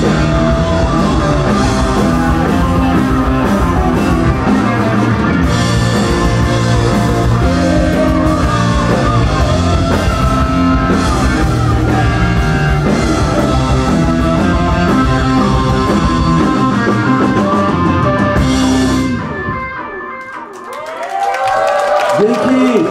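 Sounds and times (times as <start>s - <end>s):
crowd cheering: 0.0s - 18.3s, 19.2s - 22.9s
rock band playing live: 0.0s - 21.2s.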